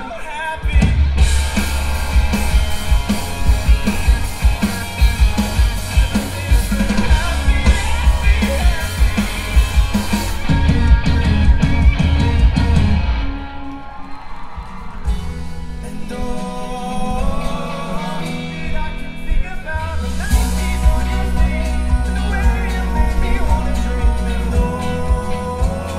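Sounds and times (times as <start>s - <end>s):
singer singing: 0.0s - 13.4s, 15.2s - 25.9s
rock band playing: 0.0s - 25.9s.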